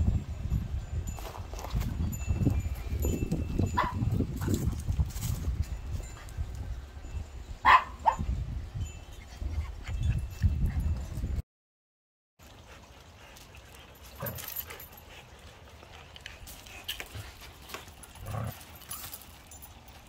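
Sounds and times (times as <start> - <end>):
dog barking: 3.8 - 4.0, 7.6 - 8.2.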